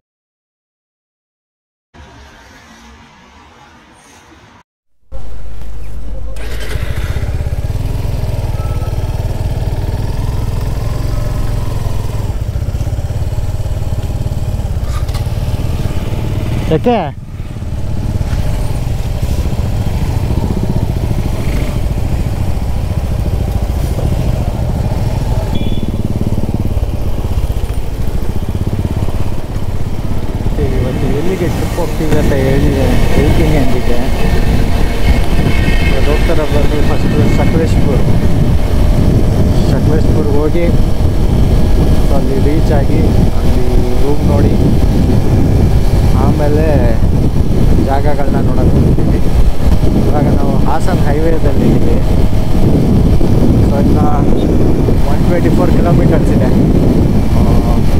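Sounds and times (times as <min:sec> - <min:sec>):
falling tone: 0:02.0 - 0:12.4
motorcycle riding: 0:05.1 - 0:57.9
wind rumble on microphone: 0:06.9 - 0:57.9.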